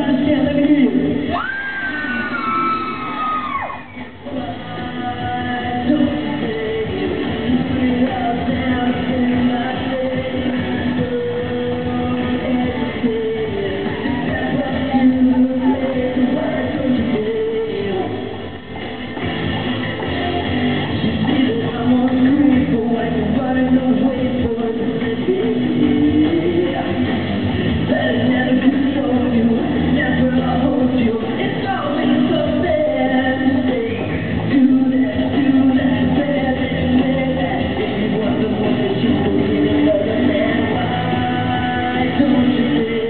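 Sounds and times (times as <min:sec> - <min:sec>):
rock-pop band playing: 0:00.0 - 0:43.0.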